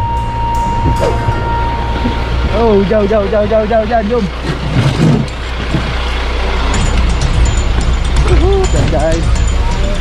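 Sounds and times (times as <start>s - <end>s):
fire engine idling: 0.0s - 10.0s.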